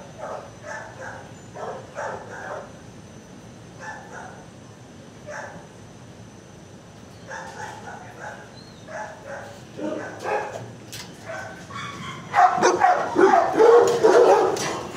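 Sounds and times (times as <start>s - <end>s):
dogs barking and yipping: 0.2s - 2.7s, 3.8s - 4.4s, 7.2s - 14.9s.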